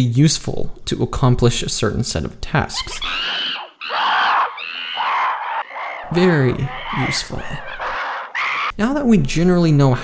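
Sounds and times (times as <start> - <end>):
high-pitched screaming: 2.6 - 8.7.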